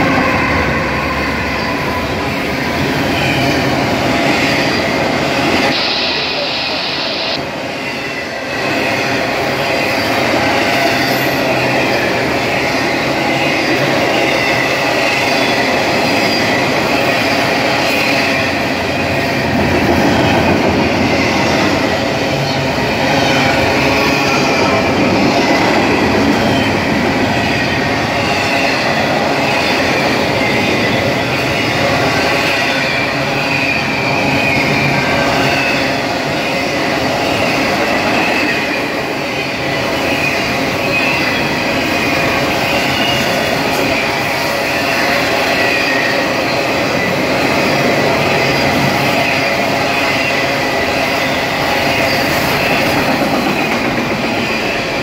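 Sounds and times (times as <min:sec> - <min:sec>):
high wheel squeal: 0:00.0 - 0:19.7, 0:20.5 - 0:55.0
train wheels rumbling on rail: 0:00.0 - 0:55.0.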